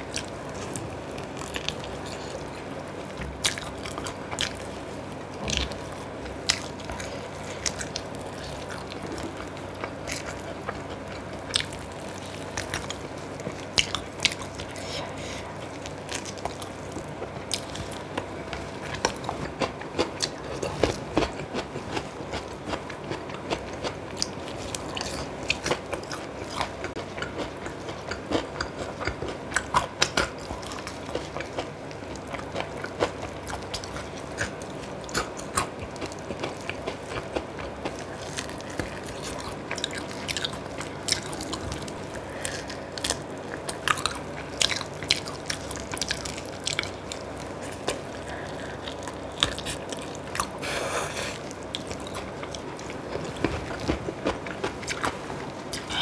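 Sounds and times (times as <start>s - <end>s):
eating clicks and crunches: 0.0s - 15.0s, 15.6s - 56.0s
person chewing crunchy food: 0.0s - 56.0s.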